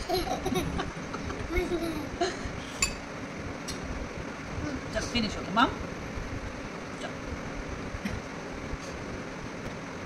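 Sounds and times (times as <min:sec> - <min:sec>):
toddler laughing: 0:00.0 - 0:02.5.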